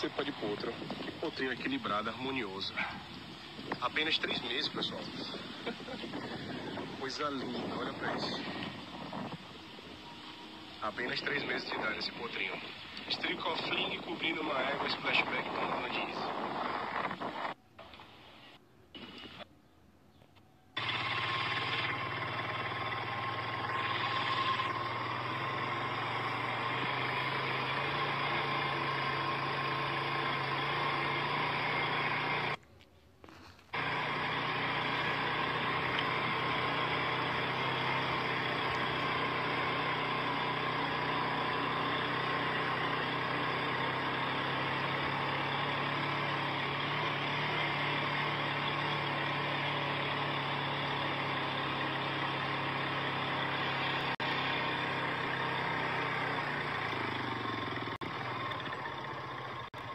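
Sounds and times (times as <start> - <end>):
vehicle engine humming: 0.0 - 19.6, 20.3 - 59.9.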